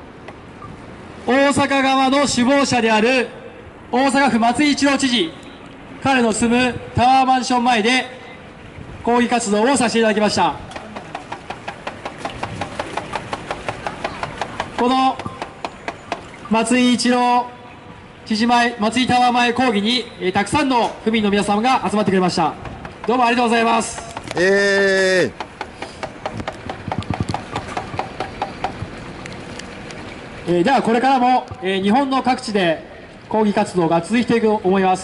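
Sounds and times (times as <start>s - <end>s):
low street background noise: 0.0s - 35.0s.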